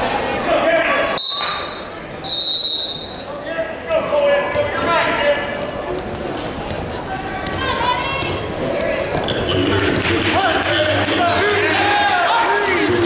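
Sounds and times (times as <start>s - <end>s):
people shouting in a gym: 10.4s - 12.9s.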